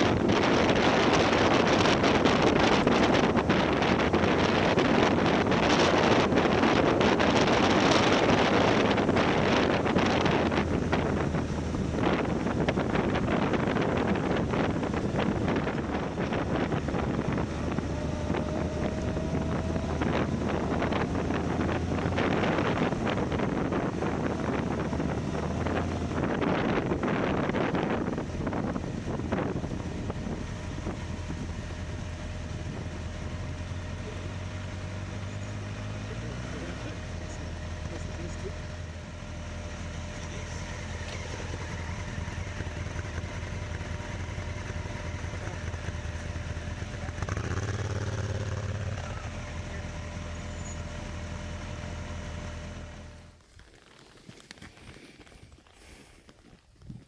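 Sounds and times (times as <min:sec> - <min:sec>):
wind rush: 0:00.0 - 0:37.0
motorcycle engine revving: 0:00.0 - 0:53.4
motorcycle engines idling: 0:00.0 - 0:53.4.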